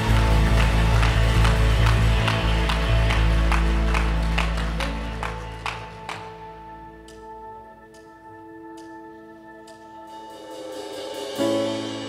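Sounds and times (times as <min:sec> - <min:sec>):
electric guitars and bass chord: 0:00.0 - 0:07.8.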